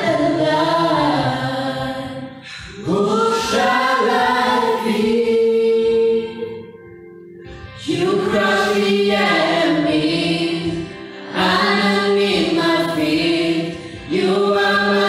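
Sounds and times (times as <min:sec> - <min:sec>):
group singing gospel: 0:00.0 - 0:06.8, 0:07.8 - 0:15.0.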